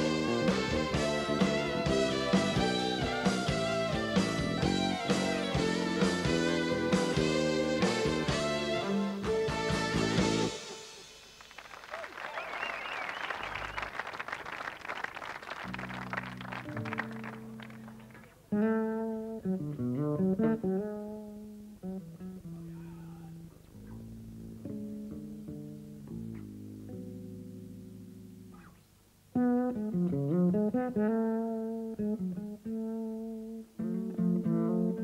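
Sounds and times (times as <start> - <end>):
lead guitar melody: 0.0 - 11.0, 15.7 - 35.0
rock band slow instrumental: 0.0 - 11.4
applause: 11.4 - 18.4.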